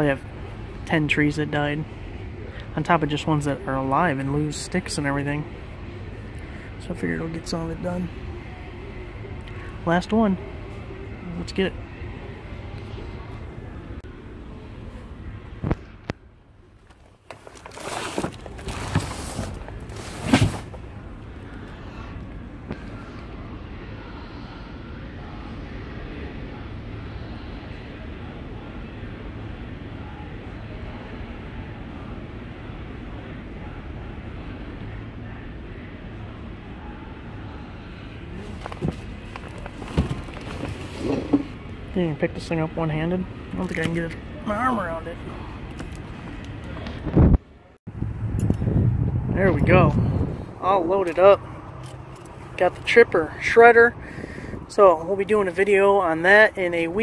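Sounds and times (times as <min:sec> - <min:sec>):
steady background noise: 0:00.0 - 0:57.0
cardboard box knocks and scrapes: 0:17.7 - 0:20.7.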